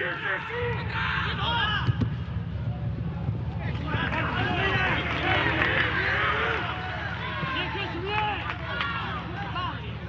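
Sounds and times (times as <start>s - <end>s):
stadium rumble: 0.0s - 10.0s
players shouting: 3.7s - 10.0s.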